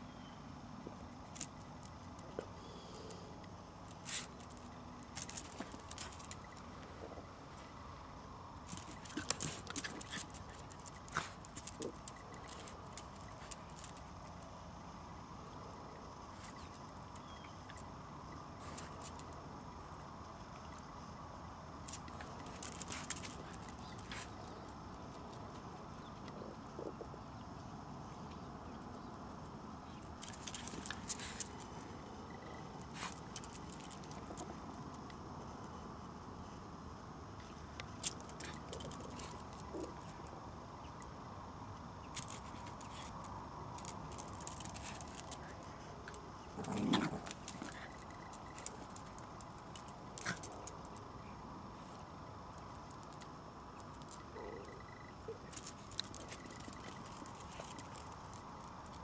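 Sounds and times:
steady background noise: 0.0 - 59.0
paws and claws scuffling on bricks: 3.9 - 7.6, 8.6 - 14.5, 21.9 - 25.7, 29.9 - 32.0, 32.8 - 34.8, 37.8 - 40.2, 42.1 - 51.1, 55.5 - 59.0.

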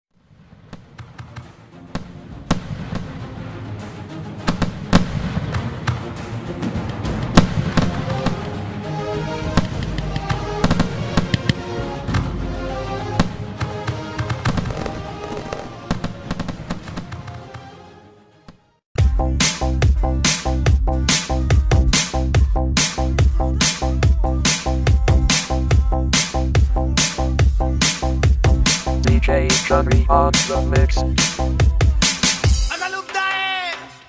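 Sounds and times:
fireworks bangs: 0.2 - 3.2, 4.4 - 8.6, 9.5 - 12.2, 13.2 - 17.4
fireworks crackling: 0.2 - 3.2, 6.8 - 8.6, 13.2 - 17.4
music: 0.8 - 34.0.

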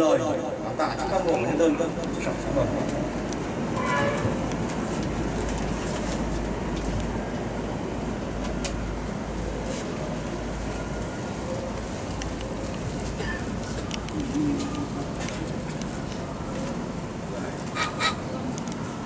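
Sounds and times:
low rumbling background noise: 0.0 - 19.0.

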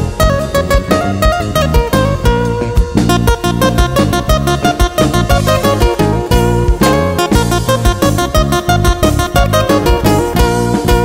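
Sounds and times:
bass: 0.0 - 11.0
guitar picking lead melody: 0.0 - 11.0
steady percussion beat: 0.0 - 11.0.

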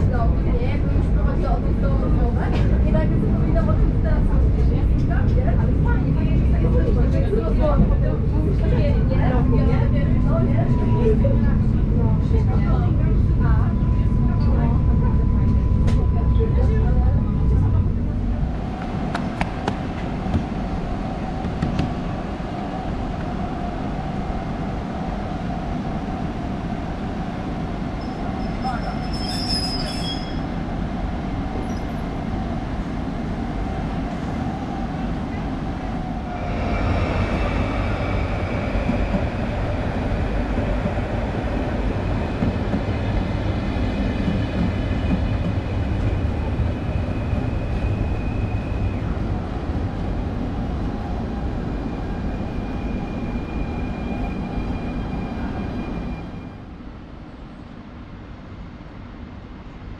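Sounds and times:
train rumbling: 0.0 - 59.9
train wheels squealing: 28.0 - 30.5, 31.6 - 32.0, 47.0 - 49.2, 51.8 - 56.6
electric train humming: 30.0 - 57.5.

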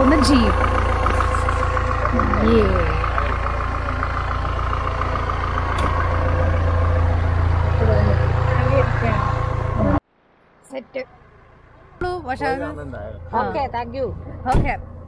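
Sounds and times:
jeep engine idling: 0.0 - 10.0, 11.2 - 15.0.

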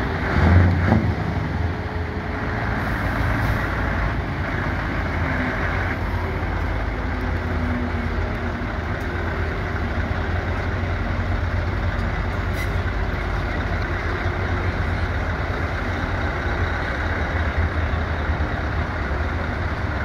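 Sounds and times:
lorry diesel engine driving past: 0.0 - 20.0.

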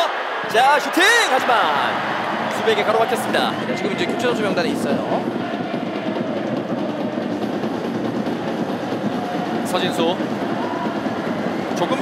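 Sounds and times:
stadium crowd roar: 0.0 - 12.0.

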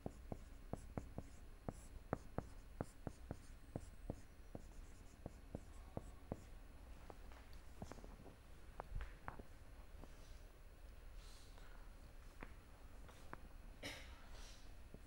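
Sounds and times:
marker pen writing on whiteboard: 0.0 - 6.5, 7.7 - 8.1.

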